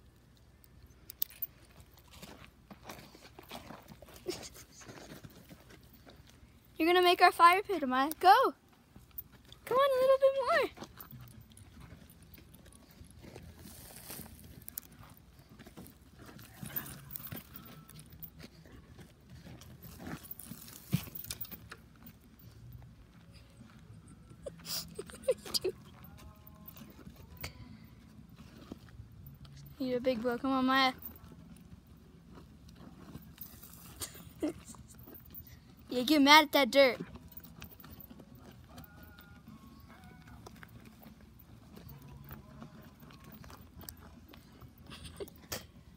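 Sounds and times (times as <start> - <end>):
dog digging in dry dirt: 0.0 - 6.8, 10.7 - 35.9, 37.0 - 45.9.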